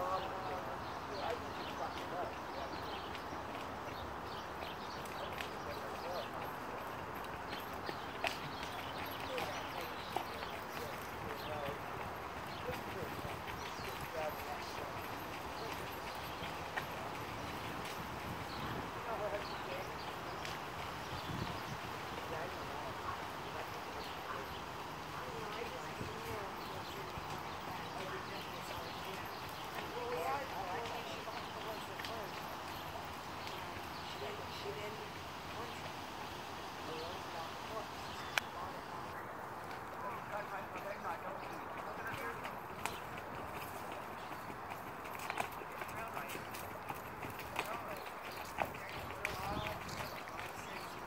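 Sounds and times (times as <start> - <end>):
faint voices: 0.0 - 51.0
horse hoofbeats on dirt: 0.0 - 51.0.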